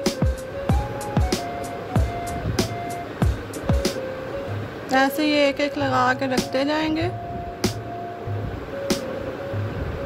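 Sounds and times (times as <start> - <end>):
held synth notes: 0.0 - 10.0.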